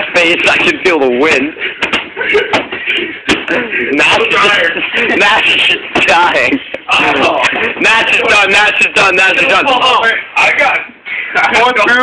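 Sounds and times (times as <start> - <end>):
people shouting: 3.5 - 10.0.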